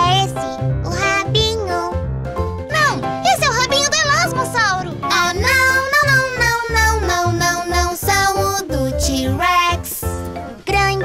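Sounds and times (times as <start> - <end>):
child singing: 0.0 - 2.0, 3.6 - 11.0
bright backing music with bass: 0.0 - 11.0.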